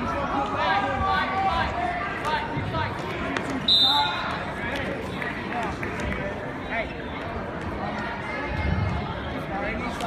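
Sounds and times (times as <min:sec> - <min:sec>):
crowd voices: 0:00.0 - 0:10.0
referee whistle blast: 0:03.7 - 0:04.2.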